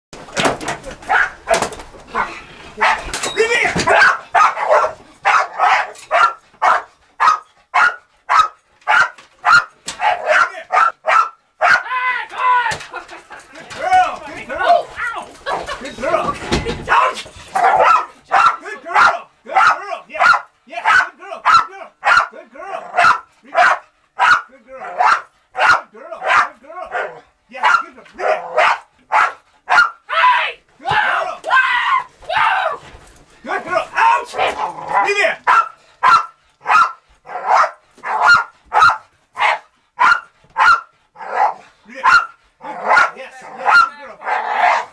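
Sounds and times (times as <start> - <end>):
dog barking: 1.1 - 3.1, 3.8 - 11.9, 16.9 - 30.0, 34.3 - 44.9.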